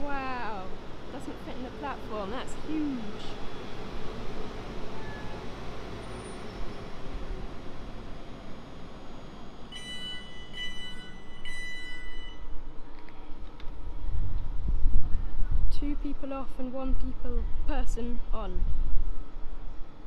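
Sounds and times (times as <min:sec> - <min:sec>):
train rumbling into platform: 0:00.0 - 0:20.0
high tone pulses: 0:09.7 - 0:12.6.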